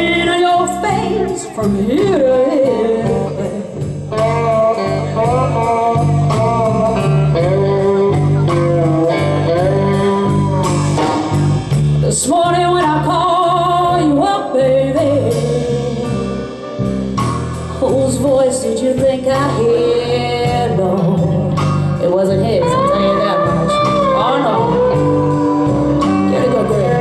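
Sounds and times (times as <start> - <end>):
woman singing with vibrato: 0.0 - 11.4, 12.0 - 16.5, 17.7 - 27.0
drum kit steady beat: 0.0 - 27.0
electric guitars: 0.0 - 27.0.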